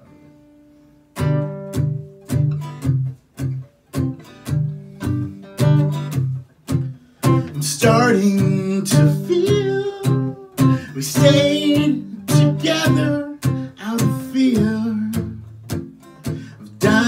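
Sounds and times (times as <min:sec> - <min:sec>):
acoustic guitar strummed chords: 0:00.0 - 0:17.0.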